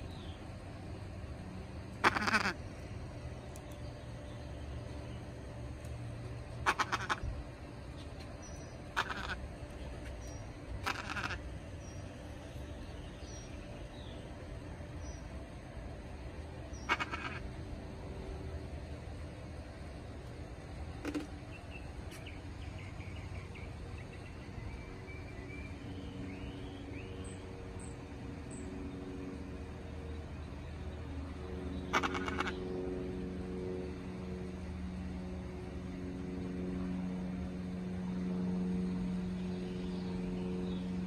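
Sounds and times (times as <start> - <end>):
steady low rumble: 0.0 - 41.0
parrot squawking: 2.0 - 2.6, 6.6 - 7.2, 8.9 - 9.4, 10.8 - 11.4, 16.8 - 17.4, 31.9 - 32.6.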